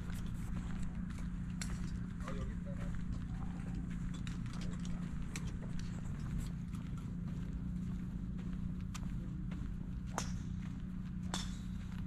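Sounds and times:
footsteps tapping and clicking: 0.0s - 12.0s
steady low hum: 0.0s - 12.0s
faint voices: 0.5s - 9.9s.

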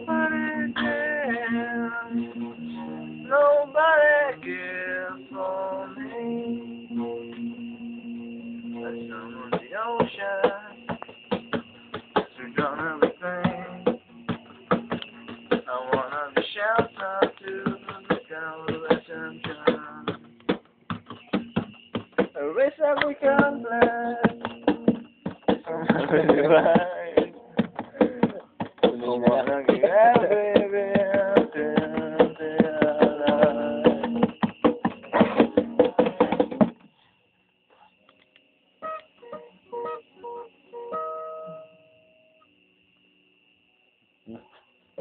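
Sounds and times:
guitar notes picked: 0.0s - 3.3s, 6.0s - 9.7s, 38.8s - 42.0s
guitar strumming: 0.0s - 36.7s, 38.8s - 42.1s.

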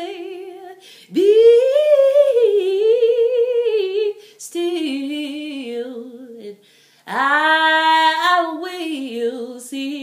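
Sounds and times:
woman singing a cappella: 0.0s - 10.0s.

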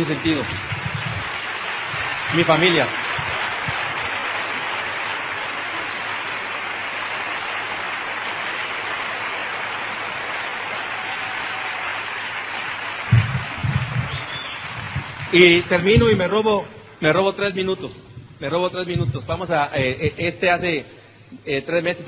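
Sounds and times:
audience applauding: 0.0s - 17.4s
low thumps: 13.1s - 16.3s, 17.9s - 20.3s.

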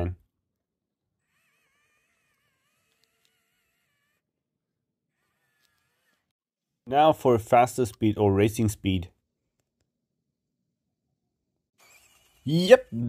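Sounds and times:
small electric motor whine: 1.1s - 6.4s, 11.8s - 13.0s.

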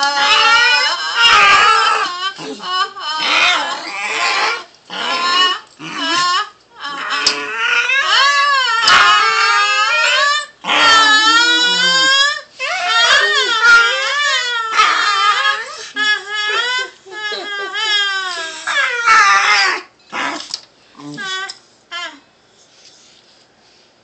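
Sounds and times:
small dog whining: 0.0s - 22.3s.

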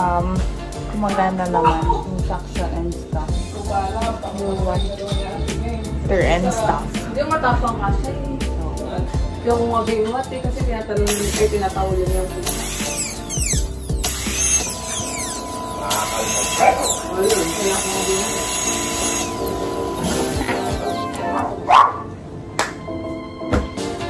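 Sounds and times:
background music: 0.0s - 24.0s
dental drill whining: 11.1s - 21.4s.

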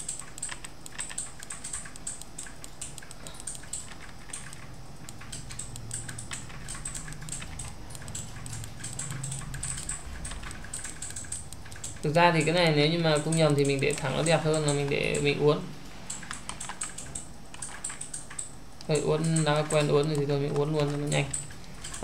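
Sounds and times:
keyboard and mouse clicks: 0.0s - 15.4s, 16.0s - 22.0s
low background hum: 0.0s - 22.0s.

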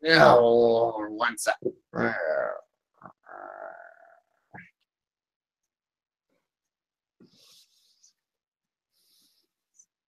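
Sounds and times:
man speaking: 0.1s - 2.6s
man's croaky throat sounds: 1.8s - 4.7s.

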